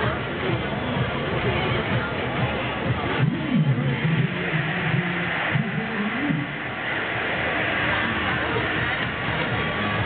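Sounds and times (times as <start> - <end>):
crowd and ride noise: 0.0 - 10.0.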